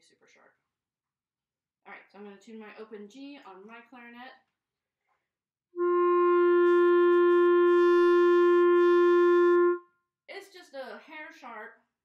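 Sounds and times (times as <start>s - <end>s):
clarinet long steady note: 5.8s - 9.8s.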